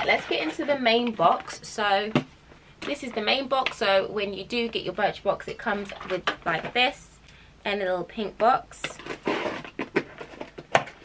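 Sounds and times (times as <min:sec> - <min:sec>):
cardboard rustling: 0:08.9 - 0:11.0.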